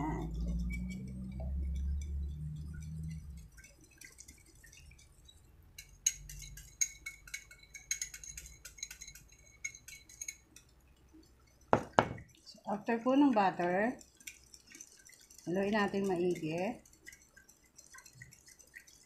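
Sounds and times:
metal utensil clinking on ceramic: 5.7s - 10.7s, 13.6s - 19.0s.

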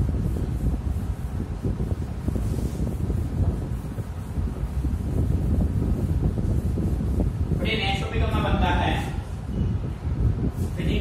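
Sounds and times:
duster wiping chalk blackboard: 0.0s - 11.0s
wind noise on microphone: 0.0s - 11.0s.

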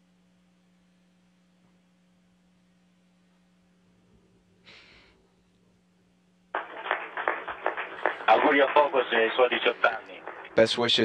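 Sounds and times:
speech over radio: 8.3s - 11.0s.

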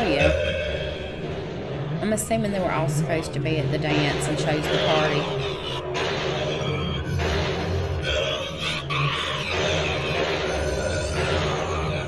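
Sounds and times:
low rumbling drone: 0.0s - 12.0s.

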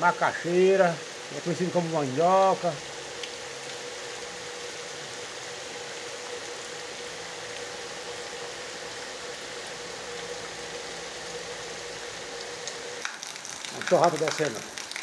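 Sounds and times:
faint steady hum: 0.0s - 13.6s
rain falling on trees: 0.0s - 15.0s.

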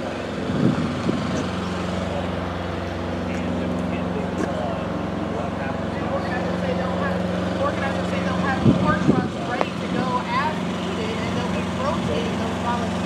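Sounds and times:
idling diesel trucks hum: 0.0s - 13.0s.

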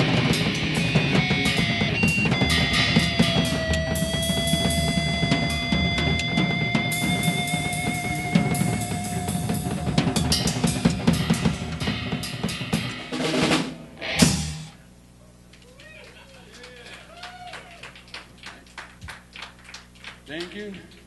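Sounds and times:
long wavering guitar note: 0.0s - 12.2s
drum roll: 0.0s - 14.8s
rock band playing loudly: 0.0s - 14.8s.

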